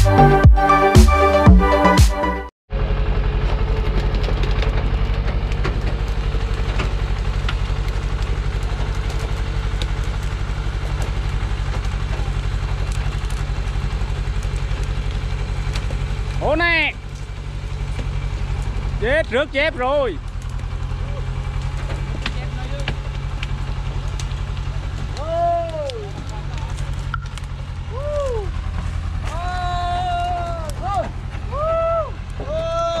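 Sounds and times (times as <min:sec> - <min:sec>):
diesel truck engine idling: 0:00.0 - 0:33.0
person shouting: 0:25.2 - 0:26.0, 0:27.9 - 0:28.5, 0:29.3 - 0:33.0.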